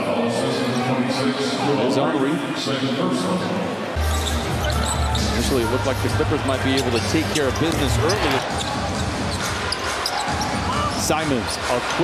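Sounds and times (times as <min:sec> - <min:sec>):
crowd noise in large hall: 0:00.0 - 0:12.0.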